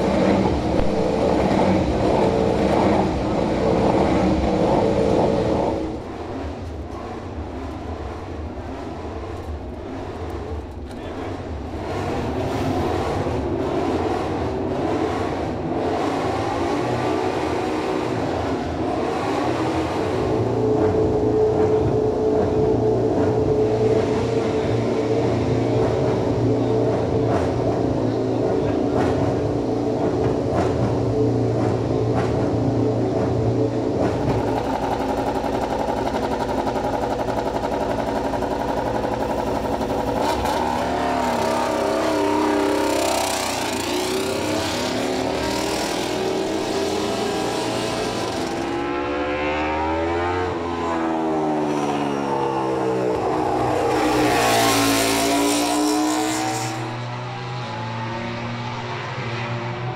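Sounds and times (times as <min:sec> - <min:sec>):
racing motorcycle engine revving: 0:00.0 - 0:07.4, 0:11.4 - 0:28.2, 0:31.5 - 0:59.9.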